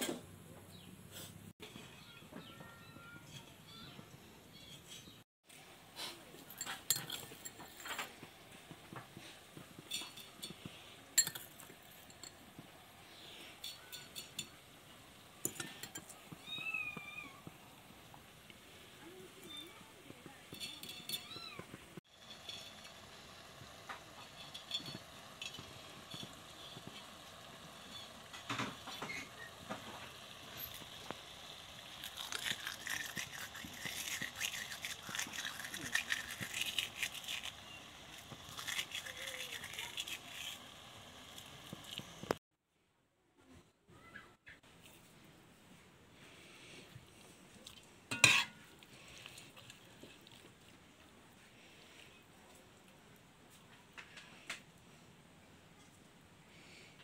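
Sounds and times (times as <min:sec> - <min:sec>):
metal spoon stirring in pot: 0:06.4 - 0:08.2, 0:09.8 - 0:12.4, 0:13.4 - 0:14.7, 0:15.4 - 0:16.3, 0:20.4 - 0:21.4, 0:22.1 - 0:42.3, 0:48.1 - 0:48.8
food rustling: 0:18.1 - 0:42.4
spoon clattering against pot: 0:20.5 - 0:21.4, 0:24.2 - 0:27.1, 0:48.1 - 0:48.6.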